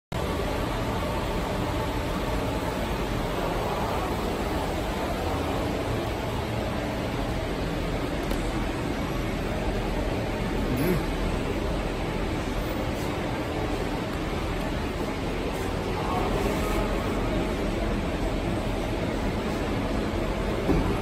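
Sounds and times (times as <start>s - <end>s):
packing machinery hum and hiss: 0.2s - 21.0s.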